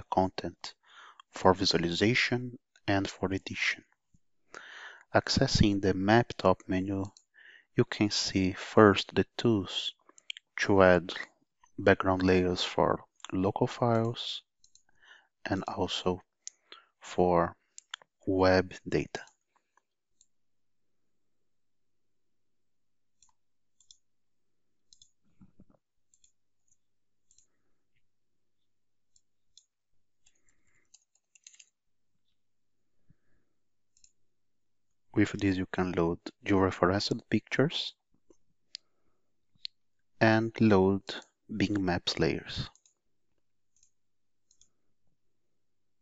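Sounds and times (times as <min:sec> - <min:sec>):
computer mouse clicks: 0:14.6 - 0:14.9, 0:23.2 - 0:24.0, 0:24.9 - 0:27.5, 0:29.1 - 0:31.7, 0:33.9 - 0:34.2, 0:42.7 - 0:43.0, 0:43.7 - 0:44.8
faint computer mouse clicks: 0:29.1 - 0:31.7, 0:44.5 - 0:44.7.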